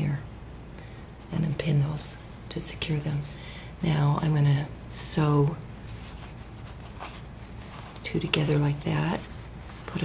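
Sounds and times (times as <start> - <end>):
fabric rustling: 5.2 - 10.0.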